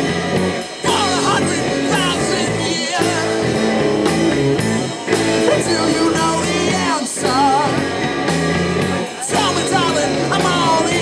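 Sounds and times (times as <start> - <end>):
live folk-rock band: 0.0 - 11.0
man singing: 0.8 - 4.2, 5.1 - 8.1, 9.0 - 11.0.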